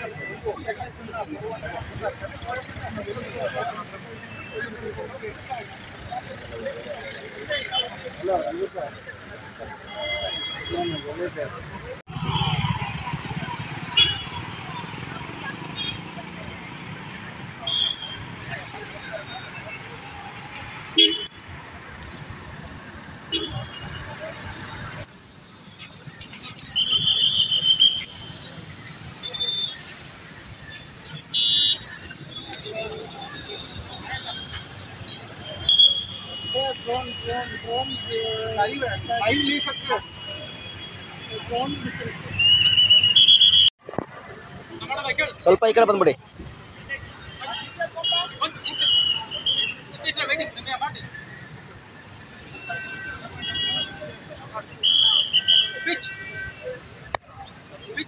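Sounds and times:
street traffic: 0.0s - 58.0s
voices talking: 0.0s - 58.0s.

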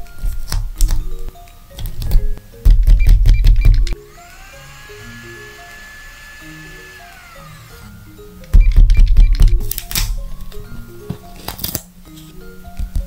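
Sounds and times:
soft background music: 0.0s - 13.0s
electric blender whirring: 4.0s - 8.0s.

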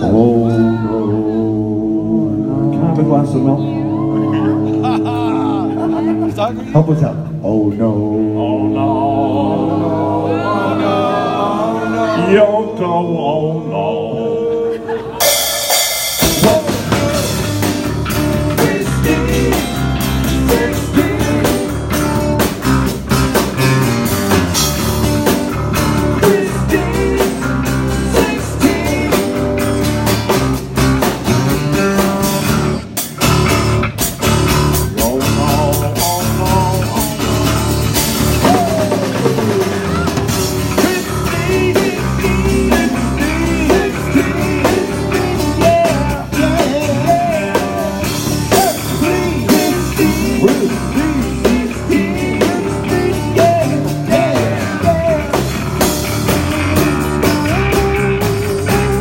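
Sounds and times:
electric bass: 0.0s - 14.5s, 15.2s - 59.0s
drum kit beat: 15.2s - 59.0s
acoustic guitars: 16.1s - 59.0s.

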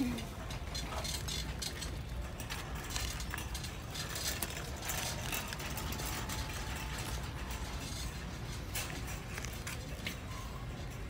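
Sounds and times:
handbag clicks and rustles: 0.0s - 10.9s
low background hum: 0.0s - 11.0s.

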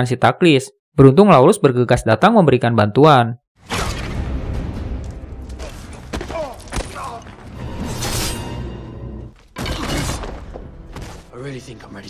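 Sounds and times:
loud crash smash: 3.6s - 8.5s.

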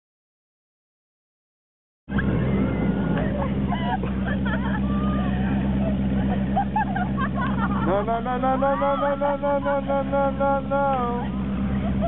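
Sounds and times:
motor idling: 2.1s - 12.0s
people laughing: 2.1s - 12.0s
voices: 2.1s - 12.0s.

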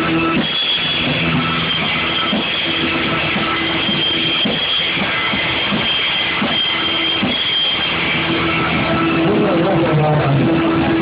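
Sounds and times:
rock band playing loudly: 0.0s - 11.0s.

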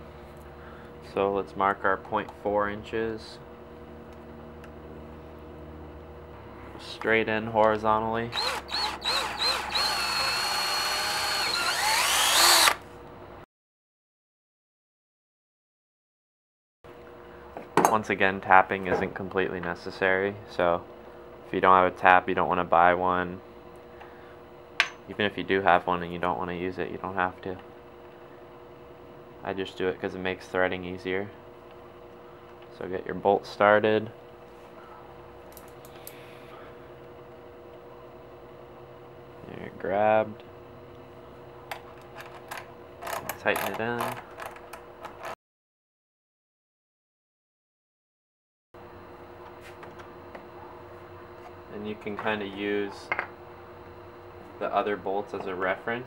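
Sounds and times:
faint steady hum: 0.0s - 13.4s, 16.9s - 45.3s.

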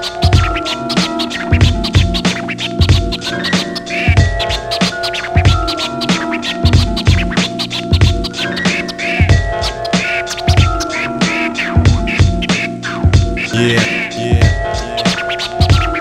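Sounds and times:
turntable scratching: 0.2s - 9.8s, 13.4s - 16.0s
held pitched tones: 13.5s - 15.5s.

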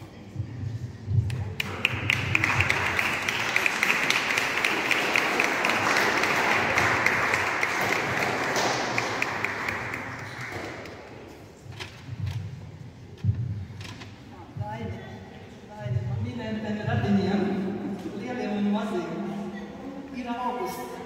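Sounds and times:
congregation applauding: 1.6s - 11.2s.

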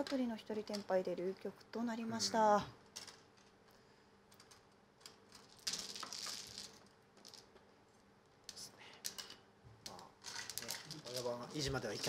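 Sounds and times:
mahjong tiles clattering: 2.9s - 3.6s, 4.3s - 7.7s, 9.0s - 12.0s.

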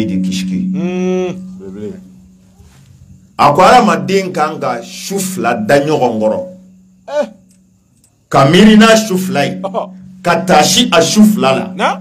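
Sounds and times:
man humming into a microphone: 0.6s - 2.0s.

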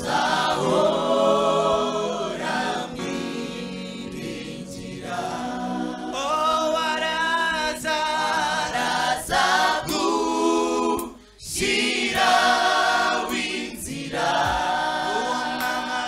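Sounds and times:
gospel choir singing: 0.0s - 16.0s.

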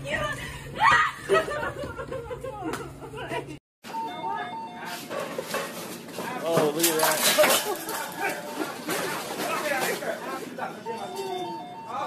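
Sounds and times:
people talking: 2.4s - 5.1s, 6.2s - 12.0s
electronic beeping tune: 3.9s - 5.1s, 10.8s - 12.0s.

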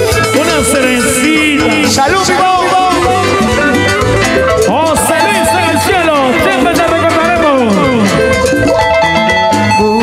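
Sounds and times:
live cumbia band music: 0.0s - 10.0s.

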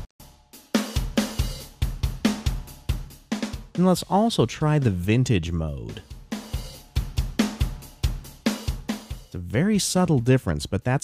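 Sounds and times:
drum kit playing a steady beat: 0.0s - 11.0s.

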